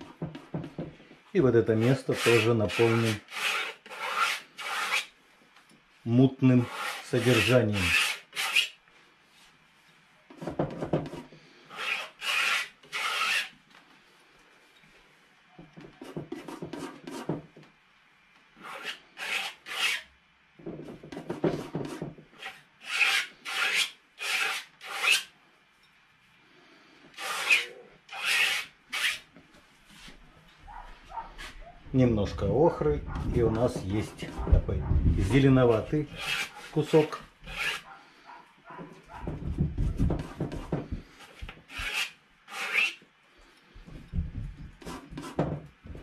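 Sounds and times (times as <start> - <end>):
dull rubbing sounds: 1.5 - 5.1, 6.5 - 8.7, 10.4 - 13.6, 32.3 - 38.0
palette knife scraping paint: 1.7 - 5.1, 6.6 - 8.7, 10.3 - 13.6, 18.6 - 20.0, 21.1 - 25.3, 27.1 - 29.2, 33.1 - 37.9, 40.2 - 43.0.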